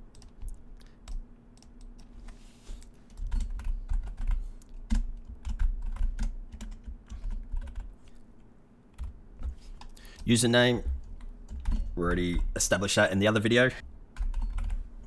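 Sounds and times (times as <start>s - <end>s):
computer keyboard typing: 0.1s - 2.1s, 2.8s - 8.2s, 8.9s - 12.5s, 14.2s - 14.8s.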